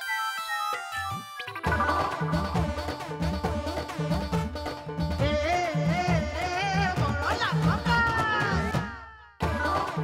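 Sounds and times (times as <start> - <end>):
theme music: 0.0 - 6.8.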